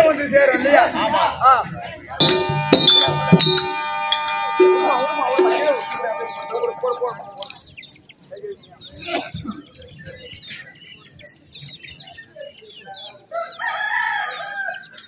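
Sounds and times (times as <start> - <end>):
small birds chirping: 7.4 - 15.0
rooster crowing: 13.4 - 14.9.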